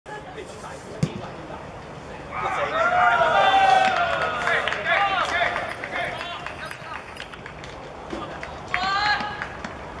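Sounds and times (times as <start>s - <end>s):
faint outdoor background: 0.1s - 10.0s.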